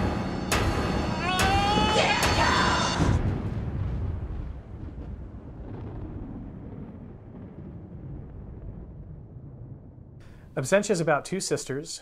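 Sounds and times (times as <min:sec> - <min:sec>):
deep boom: 0:00.0 - 0:10.4.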